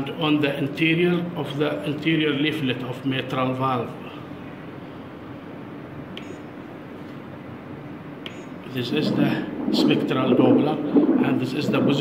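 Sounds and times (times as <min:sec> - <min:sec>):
room and machine hum: 0:00.0 - 0:12.0.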